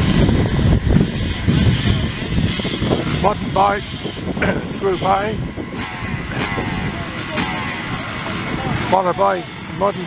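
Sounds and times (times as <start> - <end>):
motorcycle engine revs: 0.0 - 10.0
motorcycle engines idling: 0.0 - 10.0.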